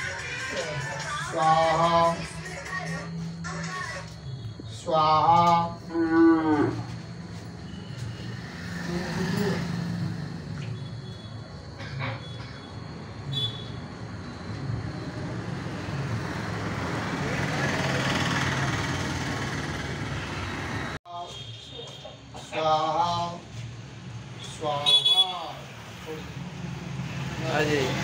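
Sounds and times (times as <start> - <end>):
indistinct low voices: 8.7 - 10.0.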